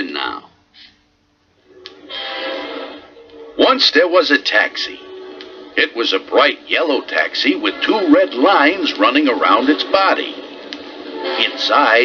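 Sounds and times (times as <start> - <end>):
sustained pitched tone: 1.6 - 12.0.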